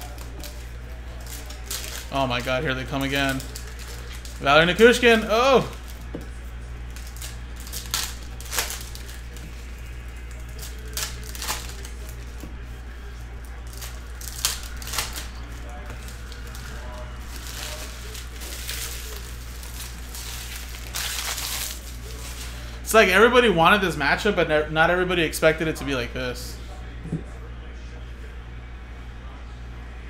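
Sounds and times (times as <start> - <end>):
foil wrapper crinkling and tearing: 0.0 - 22.8.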